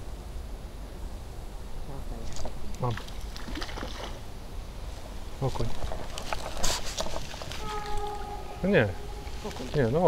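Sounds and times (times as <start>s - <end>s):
low microphone rumble: 4.2s - 10.0s.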